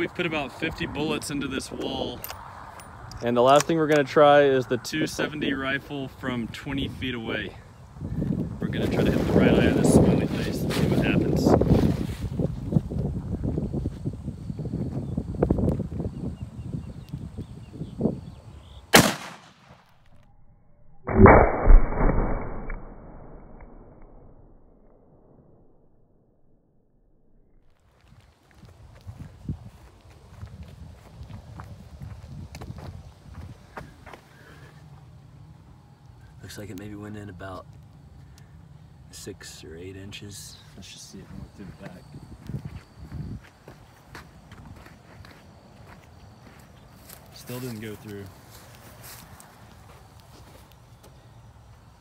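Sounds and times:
wind noise on microphone: 0:07.8 - 0:18.8, 0:28.0 - 0:34.0, 0:41.3 - 0:44.0
sharp crack: 0:18.9 - 0:20.2, 0:21.1 - 0:25.4
rifle shot report: 0:19.0 - 0:20.1.

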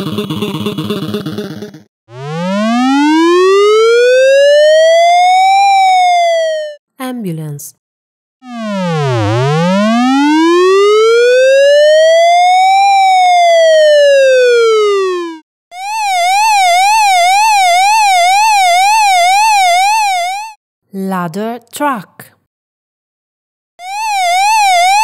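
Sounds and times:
ambulance siren wail: 0:02.1 - 0:06.8, 0:08.5 - 0:20.6, 0:23.8 - 0:25.0
fast siren warble: 0:02.1 - 0:06.8, 0:08.4 - 0:20.6, 0:23.8 - 0:25.0.

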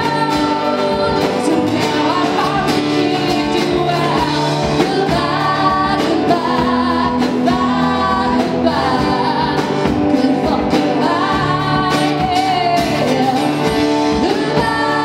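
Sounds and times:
live rock band playing: 0:00.0 - 0:15.0
women singing together: 0:00.0 - 0:15.0.

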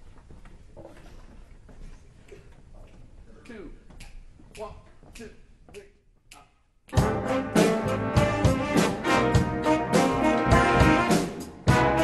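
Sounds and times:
big band playing jazz: 0:06.9 - 0:12.0
low drum beats: 0:06.9 - 0:12.0.

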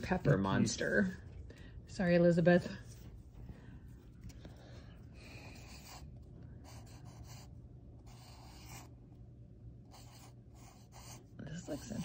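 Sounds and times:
marker drawing on paper: 0:05.4 - 0:08.9, 0:09.8 - 0:12.0.

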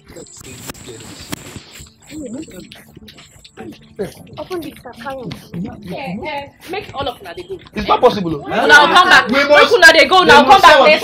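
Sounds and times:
faint voices: 0:00.0 - 0:09.2
background music: 0:01.8 - 0:11.0.

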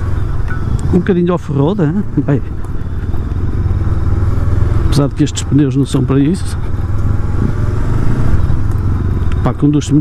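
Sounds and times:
motorcycle engine running steadily: 0:00.0 - 0:10.0.

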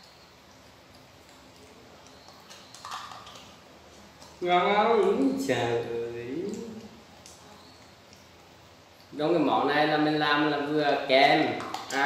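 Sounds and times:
faint eating sounds: 0:00.0 - 0:12.0
cluster of clicks: 0:00.9 - 0:03.6, 0:11.6 - 0:12.0.

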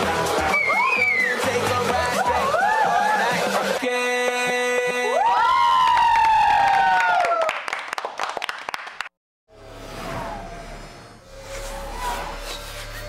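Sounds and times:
crowd cheering and clapping: 0:00.2 - 0:03.8, 0:05.0 - 0:09.2.

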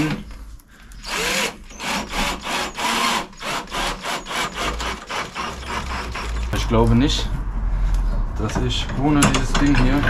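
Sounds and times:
drill driving a screw into wood: 0:01.0 - 0:06.4.

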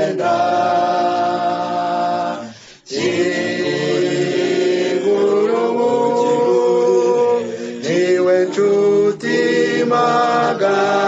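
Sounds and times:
voices singing a cappella: 0:00.0 - 0:11.0.

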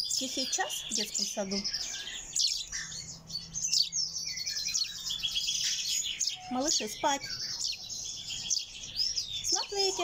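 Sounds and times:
bird chicks chirping: 0:00.0 - 0:10.0.

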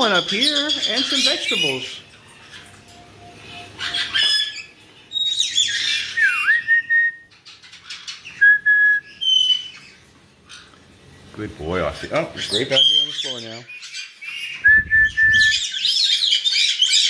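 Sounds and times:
parrots whistling and chirping: 0:00.0 - 0:11.2, 0:12.0 - 0:17.0.

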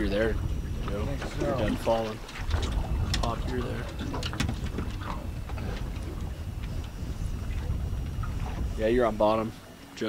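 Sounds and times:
wind rumble on microphone: 0:00.0 - 0:09.9.

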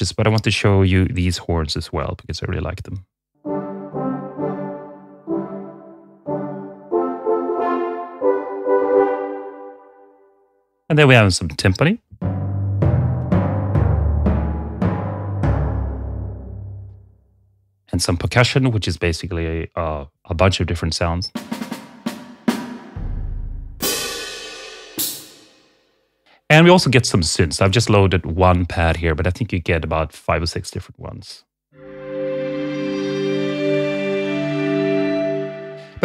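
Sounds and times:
french horns playing sustained chords: 0:03.4 - 0:10.1
short drum hits: 0:12.2 - 0:16.6, 0:22.6 - 0:25.6
cymbal crashes: 0:22.6 - 0:25.8
deep low boom: 0:23.0 - 0:23.9.

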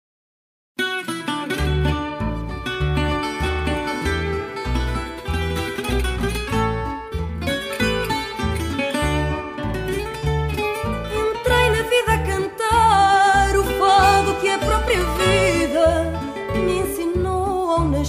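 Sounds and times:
plucked guitar melody: 0:00.8 - 0:18.0
steady bass line: 0:01.6 - 0:18.0.

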